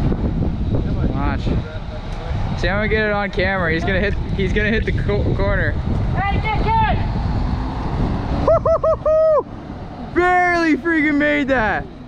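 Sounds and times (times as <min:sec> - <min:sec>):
wind on microphone: 0:00.0 - 0:10.2
truck diesel engine rumble: 0:00.0 - 0:12.0.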